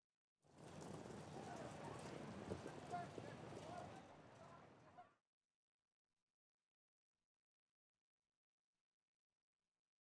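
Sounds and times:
faint hoofbeats of racing horses: 0.4 - 5.2.

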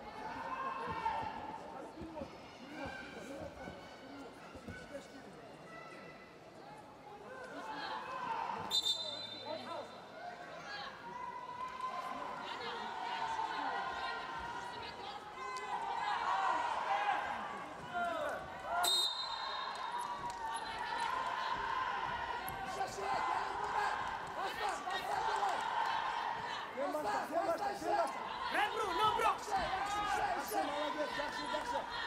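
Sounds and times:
referee's whistle blasts: 8.6 - 9.8, 18.7 - 19.9
crowd shouting: 10.8 - 32.0.

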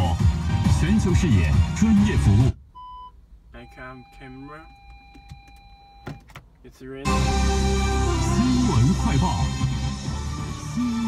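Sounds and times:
radio music: 0.0 - 2.6, 7.0 - 11.0.

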